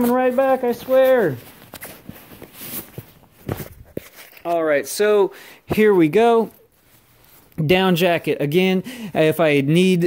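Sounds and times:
soft footsteps: 0.0s - 5.0s.

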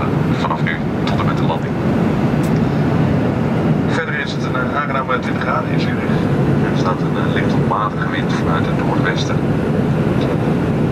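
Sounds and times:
airplane cabin engine roar: 0.0s - 10.9s.

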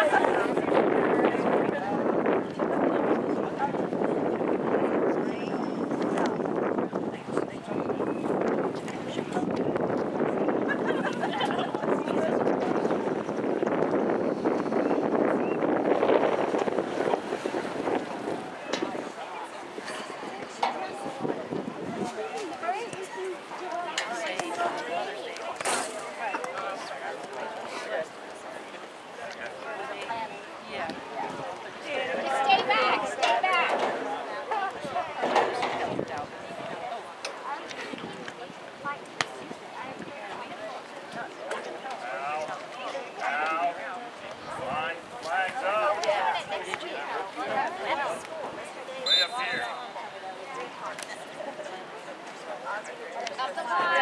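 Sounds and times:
wind buffeting microphone: 0.0s - 23.1s, 30.7s - 41.3s
faint voices: 0.0s - 54.0s.

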